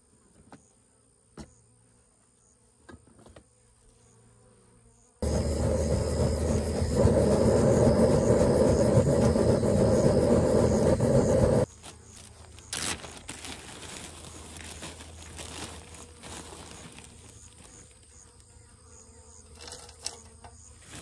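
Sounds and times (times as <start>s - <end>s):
torch flame rushing: 5.2s - 11.7s
plastic bag crinkle: 11.8s - 17.8s.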